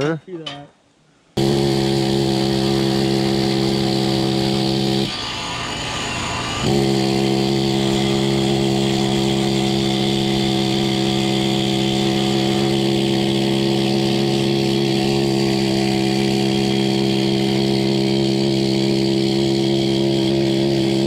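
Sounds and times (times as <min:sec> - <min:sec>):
pneumatic tool whine: 0:01.4 - 0:21.0.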